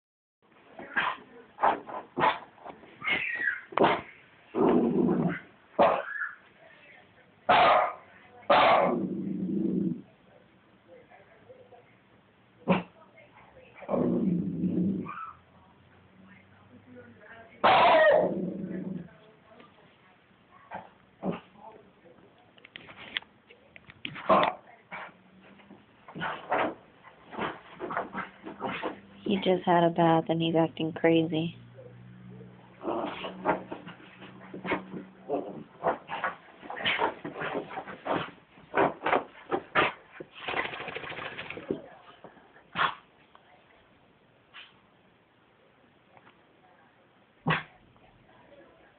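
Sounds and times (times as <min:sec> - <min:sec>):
dog scuffling on carpet: 0:33.1 - 0:39.9.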